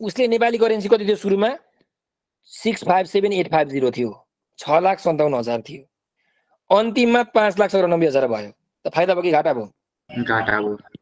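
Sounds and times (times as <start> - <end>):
man talking: 0.0 - 1.7, 2.4 - 5.9, 6.7 - 10.9.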